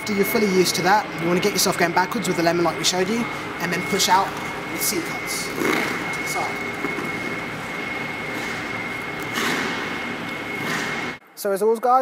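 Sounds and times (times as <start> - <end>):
rink hum with high whine: 0.0 - 12.0.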